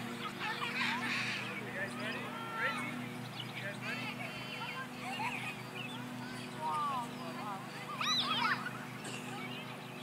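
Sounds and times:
children's voices: 0.1s - 1.5s, 3.9s - 10.0s
child shouting: 7.9s - 8.7s.

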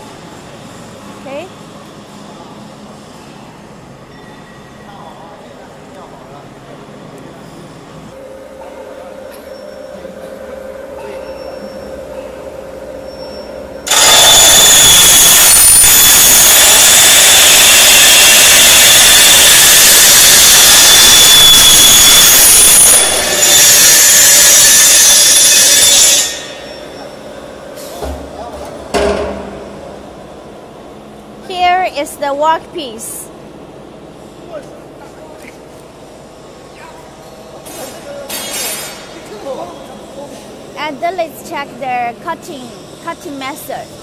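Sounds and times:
machine hum: 8.1s - 34.4s
shrill saw cutting steel: 9.6s - 27.4s.

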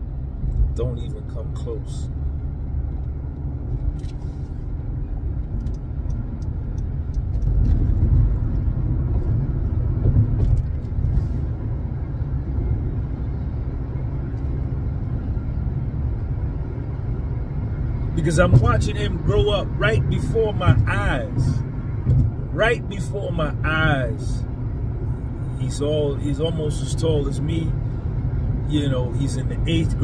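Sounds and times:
car cabin road and engine rumble: 0.0s - 30.0s.

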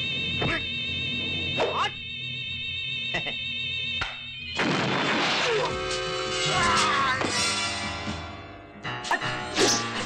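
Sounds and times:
film soundtrack music: 5.5s - 10.0s.

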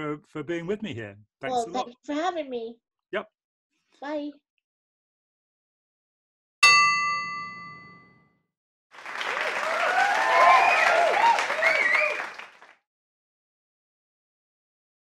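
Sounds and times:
bell strike ringing: 6.6s - 8.2s
applause and cheering: 8.9s - 12.8s.

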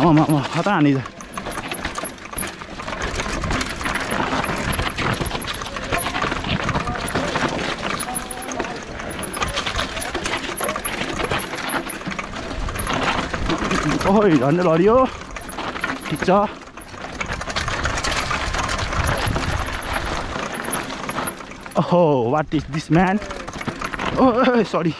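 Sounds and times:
tyres crunching over gravel: 0.0s - 22.0s, 22.6s - 24.9s
bike frame and chain rattling: 0.0s - 24.9s.

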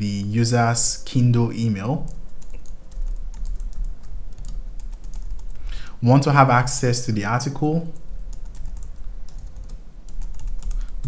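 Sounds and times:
keyboard typing: 2.0s - 5.8s, 7.9s - 11.0s.

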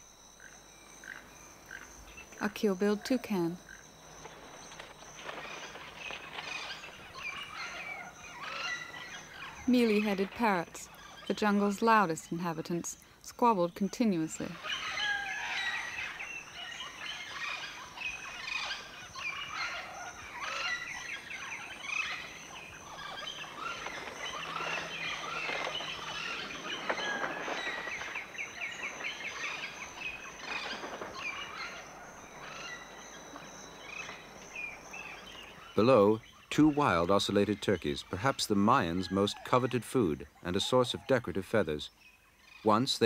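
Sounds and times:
parrots squabbling: 5.3s - 11.3s, 14.5s - 34.3s.

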